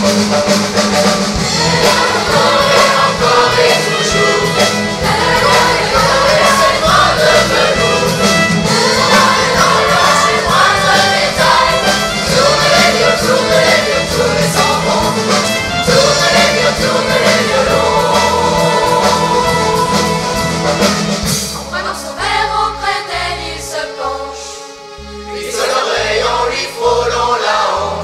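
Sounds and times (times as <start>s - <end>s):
pop band playing: 0.0s - 23.3s
youth choir singing: 1.4s - 20.9s, 21.6s - 24.6s, 25.3s - 28.0s.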